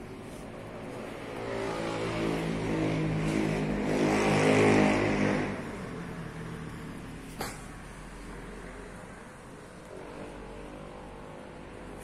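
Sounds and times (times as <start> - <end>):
vehicle engine passing by: 0.1 - 7.3.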